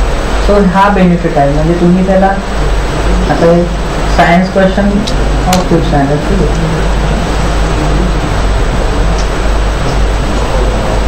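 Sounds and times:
loud rushing noise: 0.0s - 11.0s
low hum: 0.0s - 11.0s.

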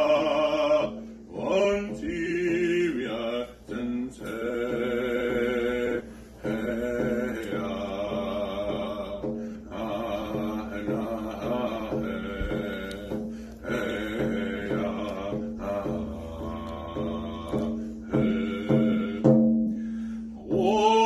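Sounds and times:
man singing a chanted song: 0.0s - 19.7s, 20.4s - 21.0s
frame drum struck with a beater: 0.0s - 21.0s.

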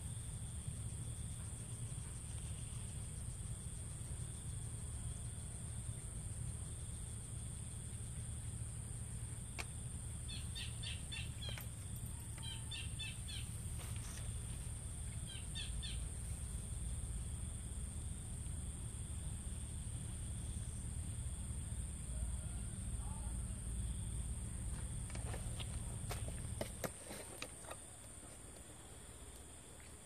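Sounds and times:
bird chirps: 10.3s - 14.3s, 15.0s - 16.1s.

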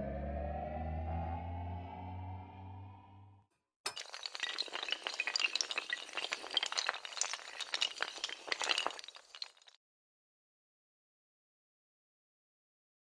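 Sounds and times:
glass shattering and tinkling: 3.9s - 9.8s.

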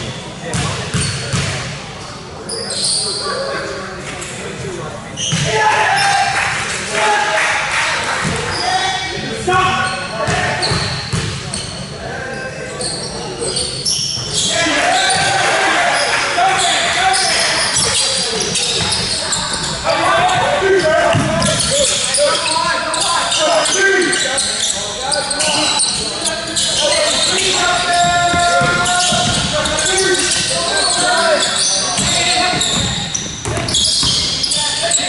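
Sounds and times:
voices calling out: 5.2s - 35.0s
basketball bouncing on hardwood: 28.0s - 29.6s.

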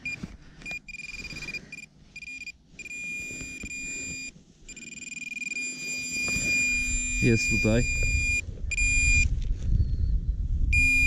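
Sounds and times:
metal detector alert tone: 0.0s - 9.3s, 10.8s - 11.0s.

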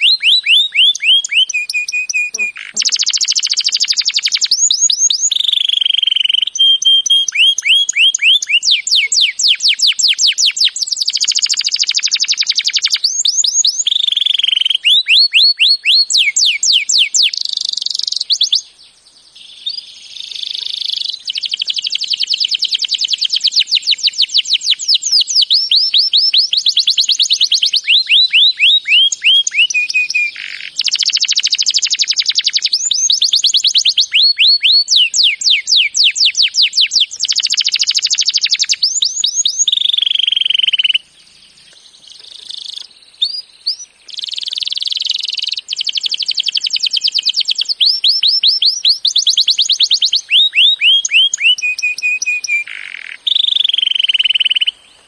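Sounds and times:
canary singing trills: 0.0s - 55.0s.

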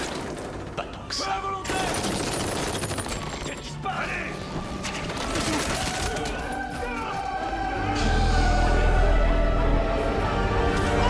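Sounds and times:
dramatic music score: 0.0s - 11.0s
voices: 3.4s - 9.2s.

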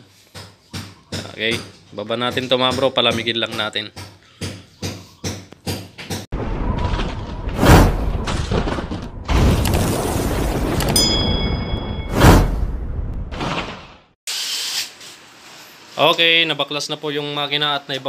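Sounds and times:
rushing whoosh: 6.4s - 10.6s
shattering burst: 6.4s - 11.0s
chime of ringing tones: 11.0s - 12.2s.

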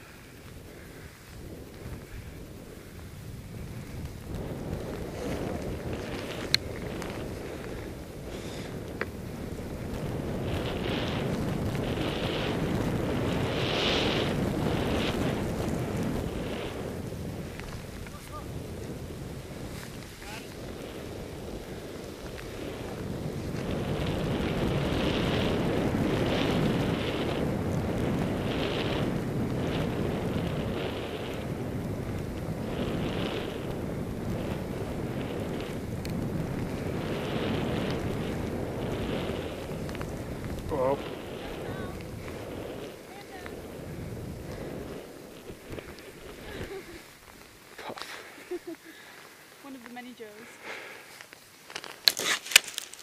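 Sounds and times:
skis hissing through powder: 0.0s - 53.0s
wind buffeting microphone: 0.0s - 53.0s.

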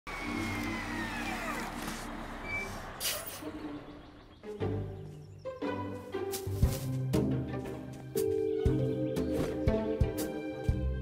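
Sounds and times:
cartoon engine humming: 0.1s - 4.2s.

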